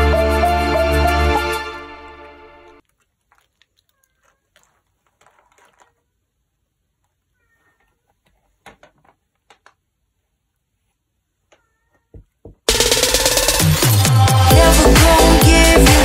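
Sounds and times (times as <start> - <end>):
background music: 0.0 - 2.8, 12.7 - 16.0
cat meowing: 7.3 - 8.0, 11.5 - 12.2.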